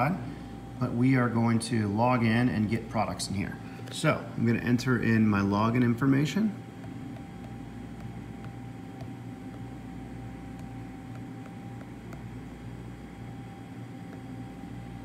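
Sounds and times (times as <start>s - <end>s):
vending machine humming: 0.0s - 15.0s
fingertip tapping touchscreen: 6.8s - 12.4s.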